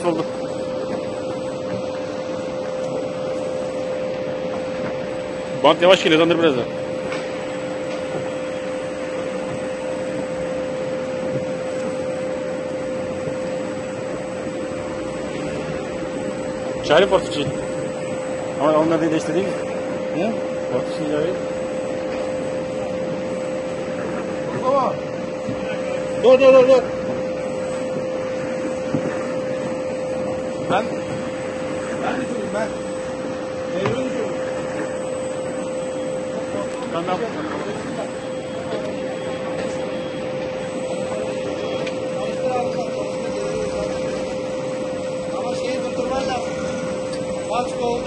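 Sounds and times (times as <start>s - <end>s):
vacuum pump humming: 0.0s - 48.0s.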